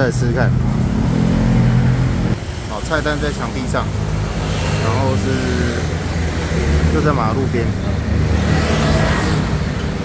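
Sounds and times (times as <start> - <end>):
vehicle passing: 0.4 - 10.0.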